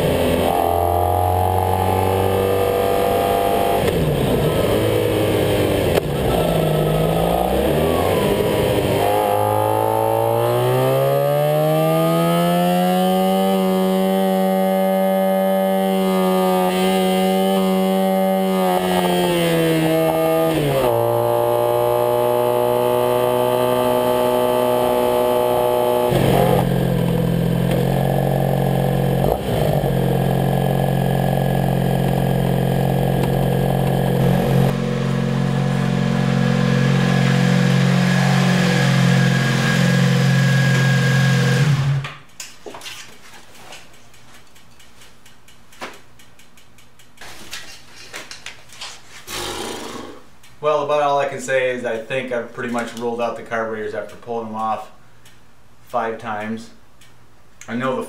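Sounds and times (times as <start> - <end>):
motorcycle engine changing gears: 0.0 - 50.3.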